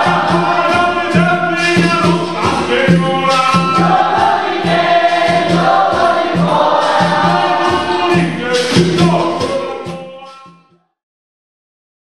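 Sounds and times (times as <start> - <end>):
low drumbeat: 0.0 - 10.3
group singing in chorus: 0.0 - 10.8.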